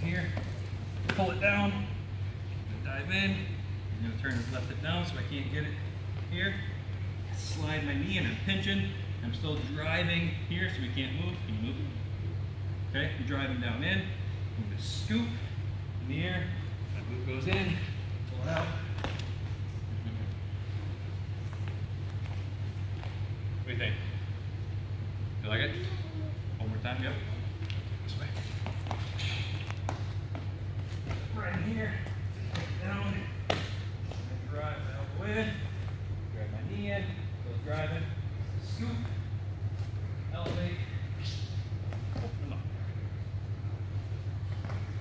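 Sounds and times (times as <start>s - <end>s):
steady low hum: 0.0s - 45.0s.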